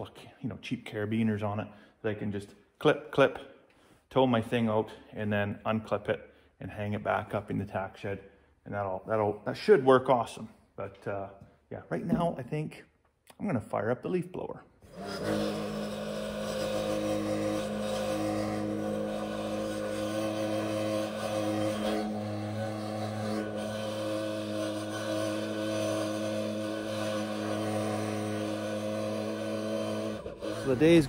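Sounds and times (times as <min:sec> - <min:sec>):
leaf blower running: 0:14.9 - 0:31.0.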